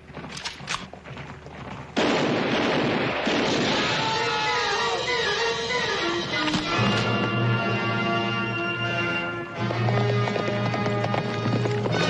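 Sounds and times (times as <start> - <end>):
horses galloping on dirt: 0.0 - 2.5, 9.0 - 12.0
dramatic music score: 4.6 - 12.0.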